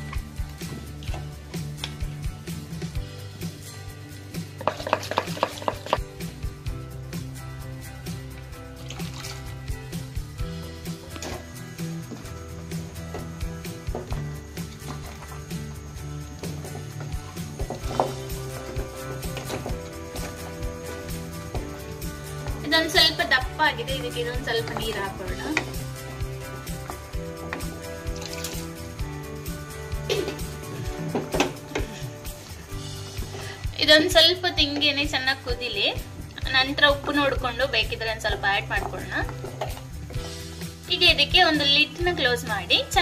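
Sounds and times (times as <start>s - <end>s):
background music: 0.0s - 43.0s.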